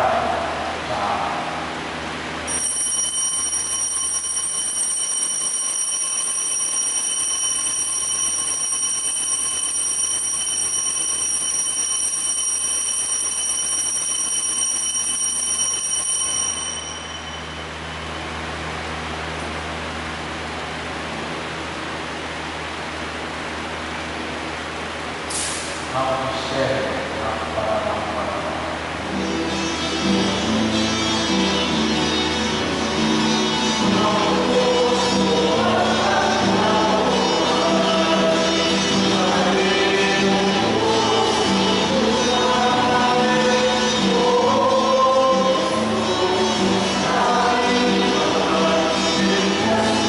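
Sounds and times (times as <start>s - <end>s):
altar bells ringing: 2.5s - 18.6s.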